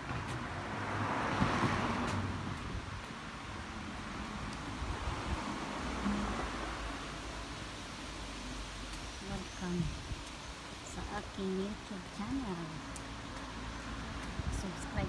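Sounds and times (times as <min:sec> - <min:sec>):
car passing by: 0:00.0 - 0:09.4, 0:12.3 - 0:15.0.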